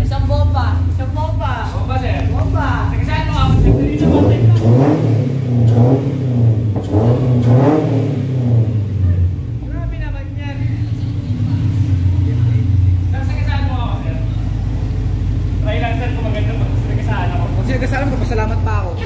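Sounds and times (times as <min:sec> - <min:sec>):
car engine revving and idling: 0:00.0 - 0:19.0.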